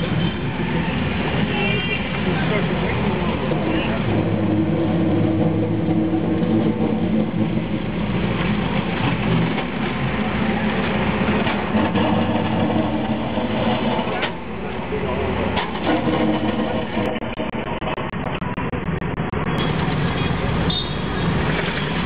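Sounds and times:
loud engine drone: 0:00.0 - 0:22.0
street traffic engines: 0:00.0 - 0:22.0.

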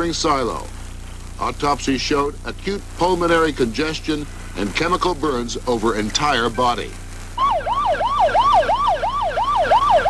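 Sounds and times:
siren on fast yelp: 0:07.4 - 0:10.0.

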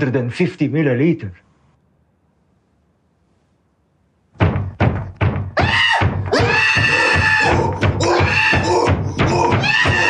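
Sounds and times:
drawn-out wavering cry: 0:05.6 - 0:10.0.

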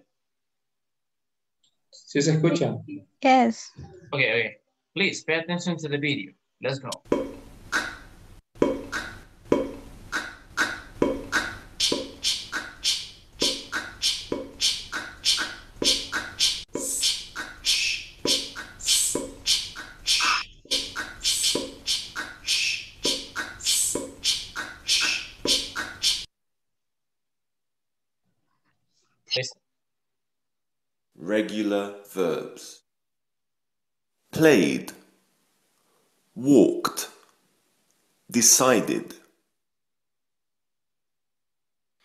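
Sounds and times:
mouth making consonant pops and hisses: 0:07.7 - 0:26.3.

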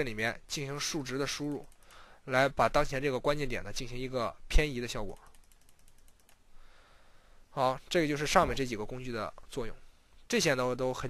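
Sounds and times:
room hiss: 0:00.0 - 0:11.0
computer mouse clicks: 0:01.4 - 0:01.9, 0:05.1 - 0:06.5.

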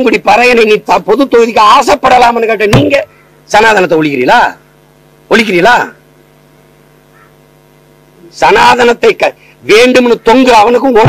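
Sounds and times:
man speaking: 0:00.0 - 0:04.6, 0:08.3 - 0:11.0
faint mains hum: 0:00.0 - 0:11.0.

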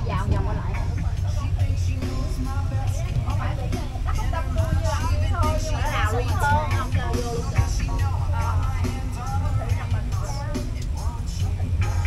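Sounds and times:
bus engine and road rumble: 0:00.0 - 0:12.0
people's voices: 0:00.0 - 0:12.0.

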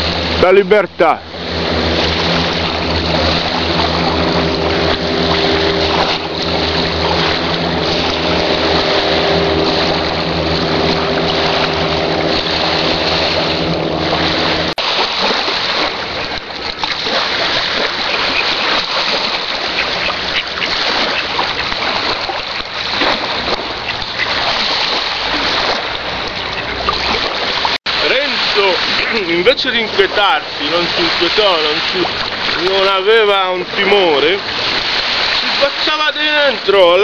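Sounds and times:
rushing wind: 0:00.0 - 0:36.8
rushing water: 0:00.0 - 0:37.0
seaplane engine droning: 0:00.0 - 0:37.0.

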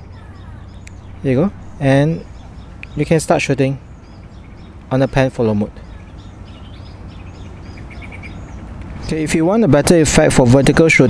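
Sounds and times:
low outdoor rumble: 0:00.0 - 0:11.0
small birds chirping: 0:00.0 - 0:11.0.

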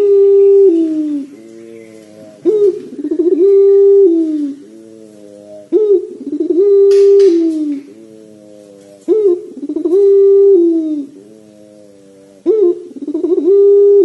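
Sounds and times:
dove cooing: 0:00.0 - 0:14.0.

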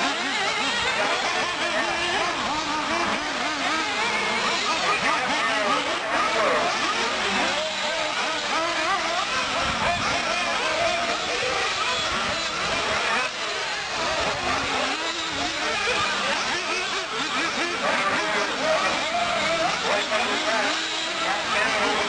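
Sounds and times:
rc buggy motors whining: 0:00.0 - 0:22.0.

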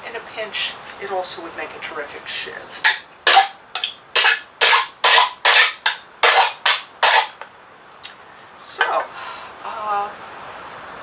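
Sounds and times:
nail file scraping: 0:02.9 - 0:07.4.

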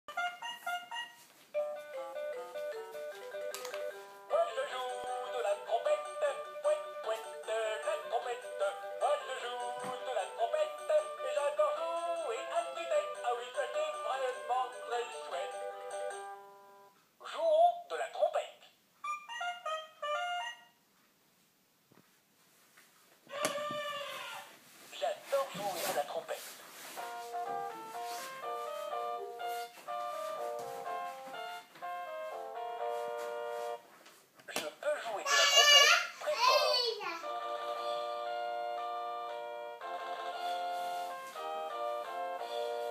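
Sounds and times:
toy trumpet electronic melody: 0:00.1 - 0:01.3, 0:19.0 - 0:20.8.

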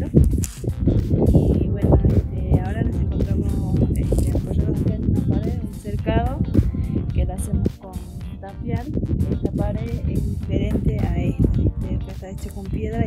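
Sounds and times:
background music: 0:00.0 - 0:13.0
woman speaking: 0:01.3 - 0:06.5, 0:07.1 - 0:13.0.

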